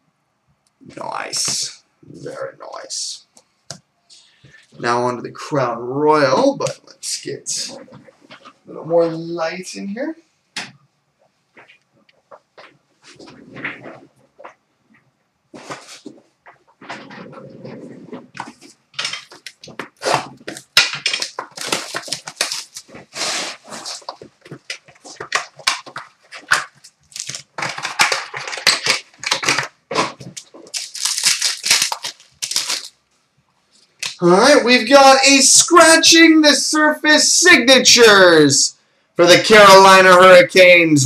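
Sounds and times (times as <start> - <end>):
cardboard handling: 15.6 - 32.9
plastic wrap crinkling and tearing: 18.2 - 33.0.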